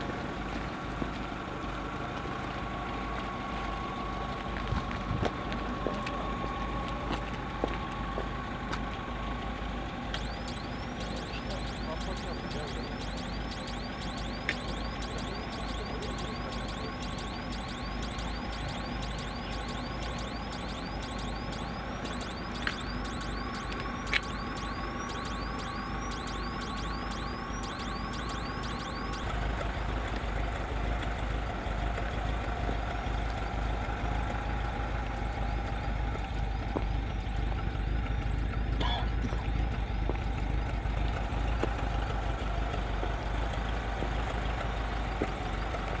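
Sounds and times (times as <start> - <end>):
van engine idling: 0.0 - 26.3, 29.1 - 46.0
faint high chirp: 10.2 - 30.9.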